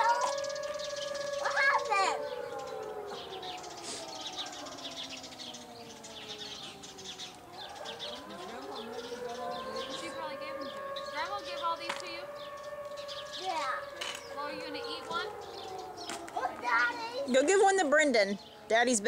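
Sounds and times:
warning siren wailing: 0.0s - 19.0s.

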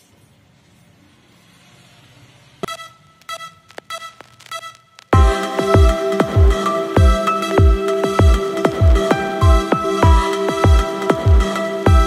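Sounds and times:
short electronic beeps: 2.6s - 5.0s.

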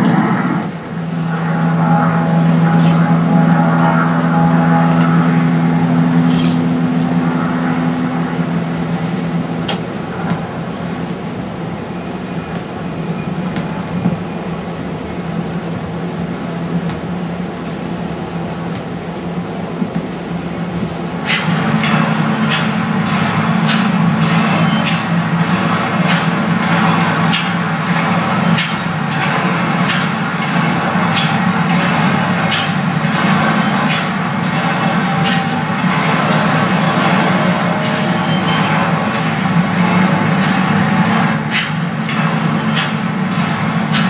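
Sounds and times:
steady hum: 0.0s - 12.2s, 16.3s - 44.0s.

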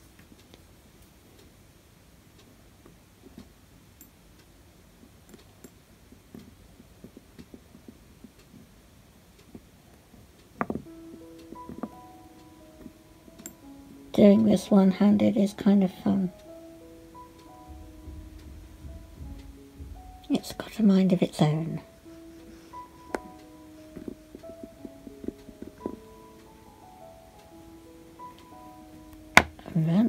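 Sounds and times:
soft background music: 5.1s - 30.0s.

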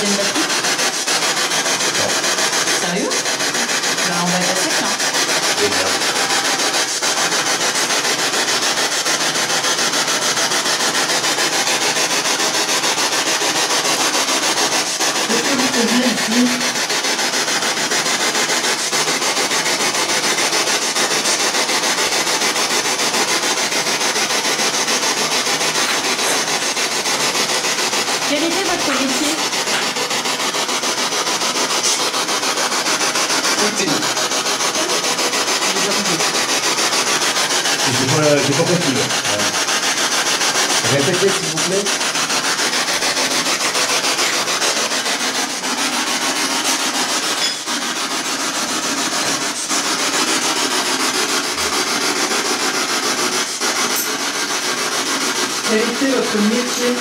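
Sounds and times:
loud static hiss: 0.0s - 57.0s.

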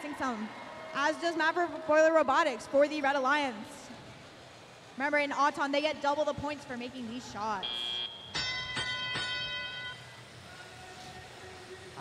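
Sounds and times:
faint arena background: 0.0s - 12.0s
bell-like dings: 8.2s - 10.0s.

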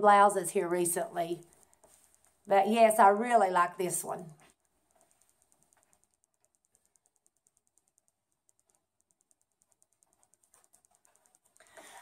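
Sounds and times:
faint rapid high-pitched ticking: 0.0s - 12.0s.

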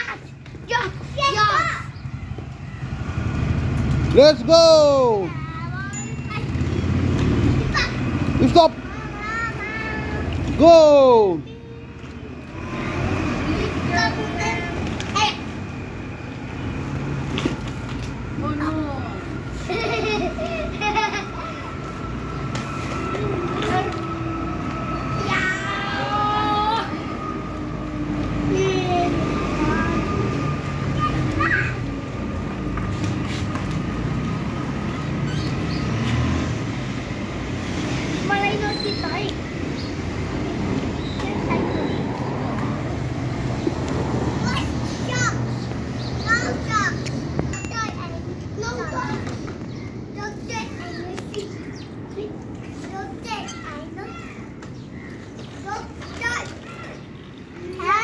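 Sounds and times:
small wheels rolling over concrete: 0.0s - 46.8s, 47.6s - 58.0s.

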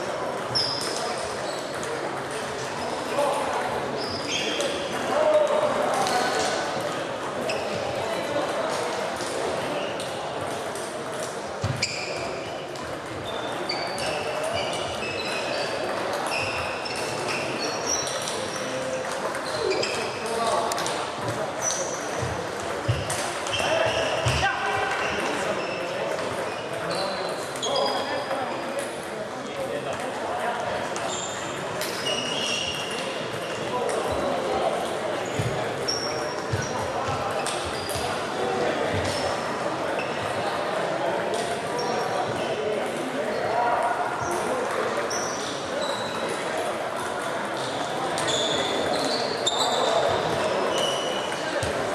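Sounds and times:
voices murmuring in a hall: 0.0s - 51.9s.

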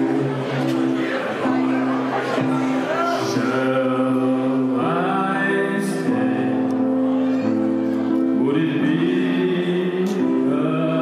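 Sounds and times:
electronic keyboard chord: 0.0s - 11.0s
man singing: 2.8s - 7.5s, 8.1s - 11.0s.

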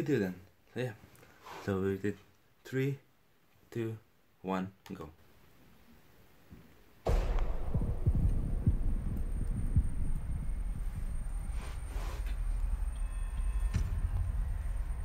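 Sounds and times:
deep rumble: 7.1s - 15.0s
heavy thuds: 7.1s - 15.0s.

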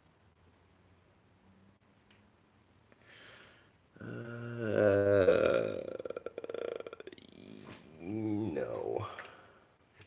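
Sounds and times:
man humming and rasping: 4.0s - 9.2s.

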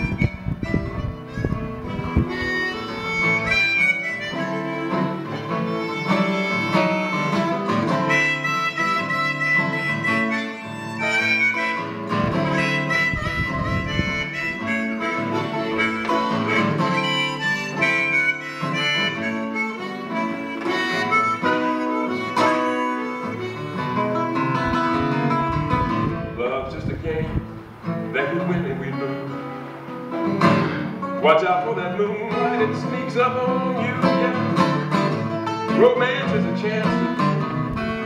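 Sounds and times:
harmonica melody: 0.0s - 26.4s, 27.6s - 38.0s
acoustic guitar accompaniment: 0.0s - 38.0s.

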